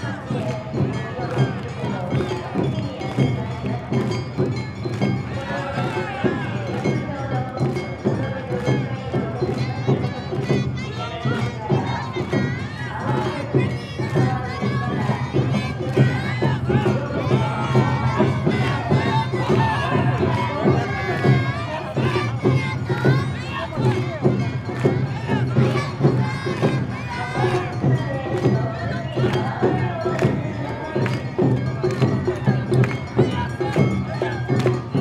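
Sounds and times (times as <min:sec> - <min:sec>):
crowd shouting and chanting: 0:00.0 - 0:35.0
drums and gongs beating: 0:00.0 - 0:35.0.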